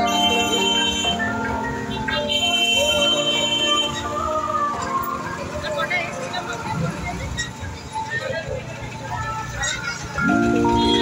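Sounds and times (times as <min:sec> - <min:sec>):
indistinct voices: 0:00.0 - 0:11.0
traffic rumble: 0:00.0 - 0:11.0.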